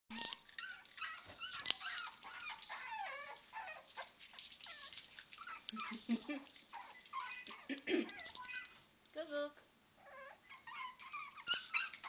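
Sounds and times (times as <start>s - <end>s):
puppies crying: 0.1s - 8.8s, 10.0s - 12.0s.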